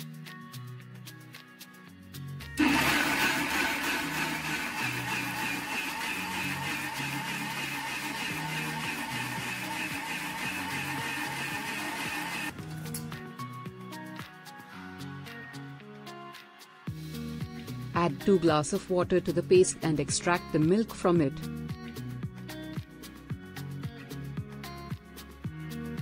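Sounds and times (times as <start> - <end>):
mixer grinder motor whine: 2.6 - 12.5.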